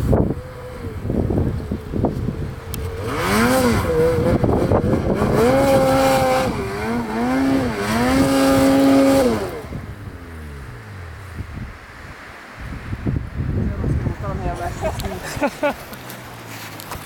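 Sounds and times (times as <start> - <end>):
snowmobile engine revving: 0.0 - 12.0.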